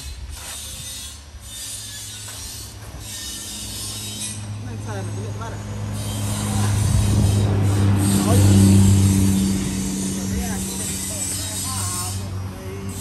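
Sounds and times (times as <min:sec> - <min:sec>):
concrete mixer engine humming: 0:02.7 - 0:13.0.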